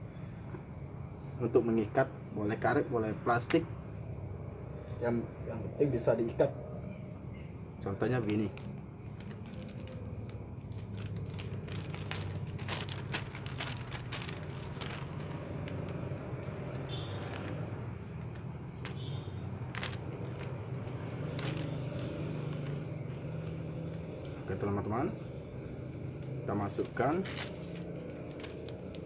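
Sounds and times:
engine humming: 7.8 - 29.0
plastic bag crinkling: 8.2 - 24.4, 26.8 - 29.0.

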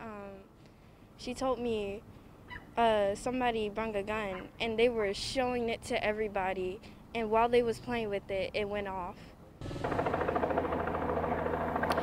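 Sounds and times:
helicopter running: 9.6 - 12.0.

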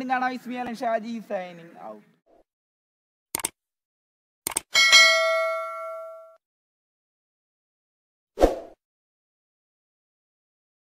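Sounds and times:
notification bell chime: 4.8 - 6.4.

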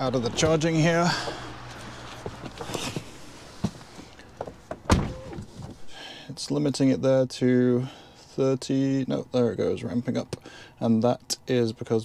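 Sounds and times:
car door shutting: 4.4 - 5.8.

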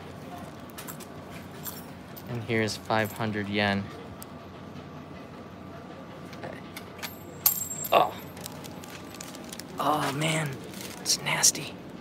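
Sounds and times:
coin clinking on pavement: 0.8 - 2.4, 7.0 - 9.4
high metallic ringing: 7.0 - 8.4.

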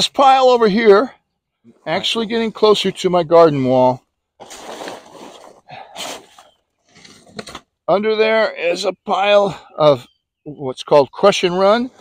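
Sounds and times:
sharp tarp crackles: 4.4 - 6.5
plastic tarp rustling and crinkling: 4.4 - 7.6.

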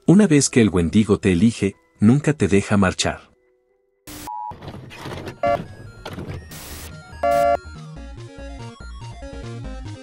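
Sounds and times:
short electronic beep: 5.4 - 5.6, 7.2 - 7.6.

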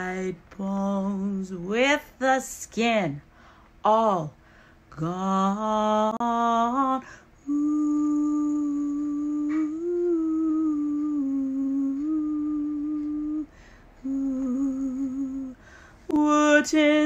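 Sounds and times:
woman humming: 5.0 - 17.0.

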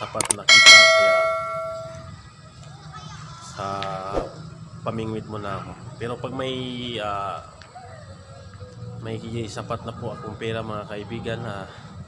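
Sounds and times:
bright bell ding: 0.4 - 2.1.

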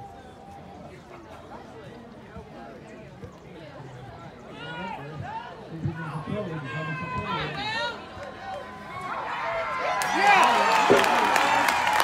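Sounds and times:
spectators talking and calling out: 0.0 - 12.0.

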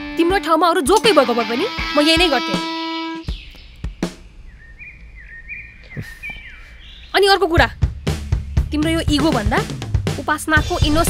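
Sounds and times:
small bird chirping: 3.2 - 9.4.

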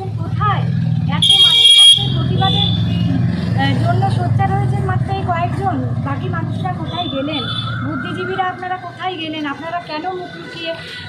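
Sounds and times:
woman speaking: 0.0 - 10.9
road traffic rumble: 0.0 - 11.0.

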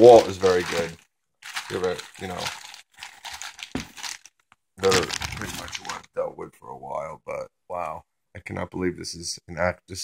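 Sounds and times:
plastic bag crinkling: 0.0 - 6.1.

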